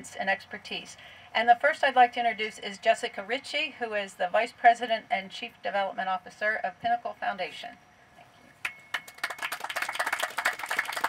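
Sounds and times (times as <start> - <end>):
audience applauding: 8.9 - 11.0.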